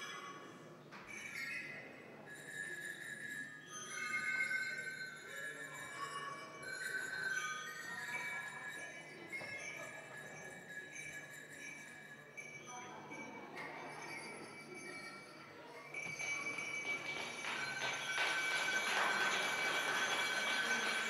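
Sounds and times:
ringing bell-like percussion: 0.0s - 21.0s.

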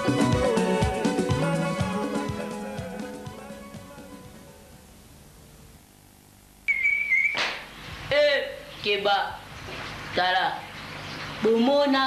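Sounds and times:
high-pitched tone: 6.7s - 7.4s.

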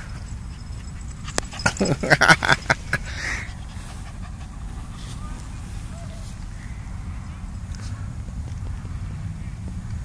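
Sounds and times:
dog panting softly: 0.0s - 2.0s, 3.2s - 5.6s
low steady rumble: 0.0s - 10.0s.

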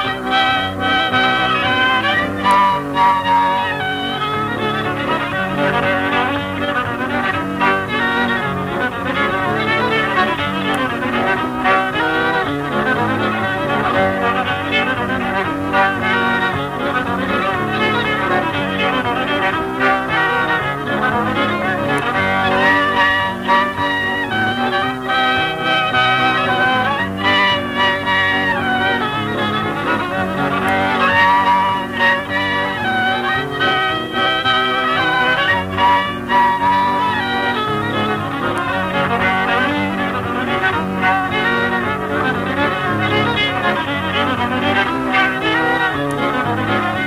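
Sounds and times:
fiddle tune: 0.0s - 47.0s.

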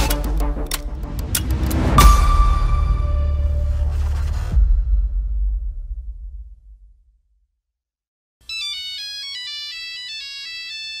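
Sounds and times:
mobile phone ringtone: 8.4s - 11.0s.

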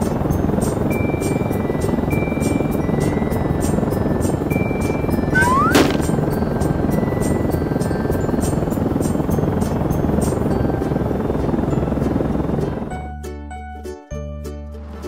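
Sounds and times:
cartoon helicopter rotor noise: 0.0s - 12.9s
background music: 1.4s - 15.0s.

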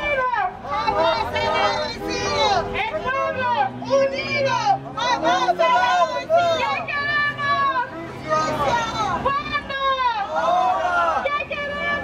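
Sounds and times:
protesters chanting: 0.0s - 12.0s.

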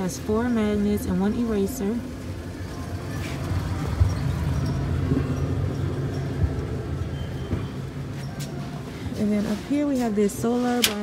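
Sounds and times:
low steady rumble: 0.0s - 10.9s.

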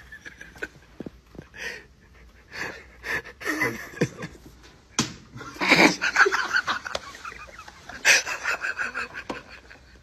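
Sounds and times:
high-pitched cackling laughter: 5.4s - 10.0s.

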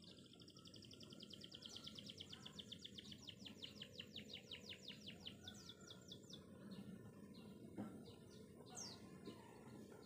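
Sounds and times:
faint bird trill: 0.0s - 10.0s.

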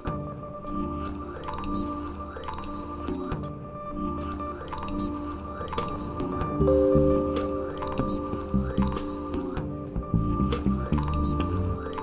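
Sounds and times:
held synth tone: 6.6s - 9.6s.

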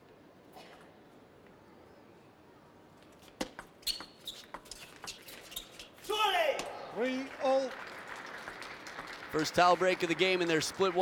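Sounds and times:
crowd noise: 6.5s - 11.0s.

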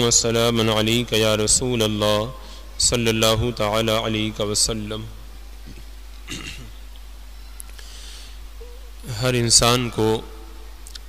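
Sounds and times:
steady low electrical hum: 0.0s - 11.0s
man's low throat noises: 5.7s - 6.8s.

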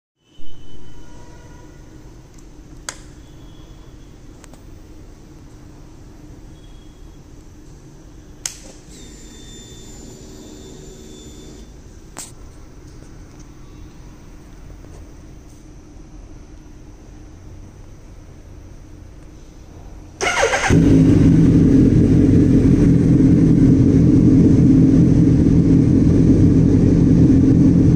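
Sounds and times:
steady low hum: 1.4s - 27.9s.

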